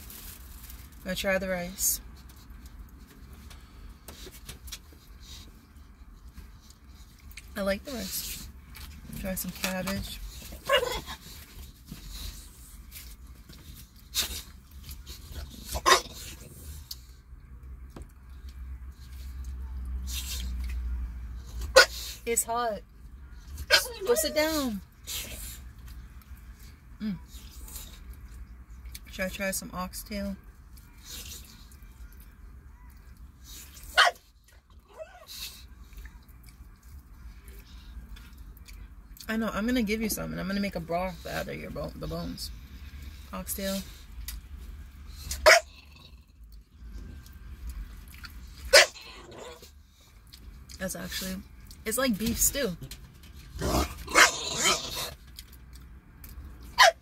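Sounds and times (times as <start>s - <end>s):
dog barking: 34.0s - 34.2s, 45.4s - 45.7s, 48.7s - 49.0s, 56.8s - 57.0s.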